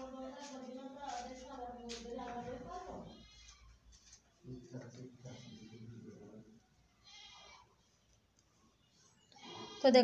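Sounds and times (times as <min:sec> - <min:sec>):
faint animal bleat: 0:05.2 - 0:06.1, 0:07.0 - 0:07.7.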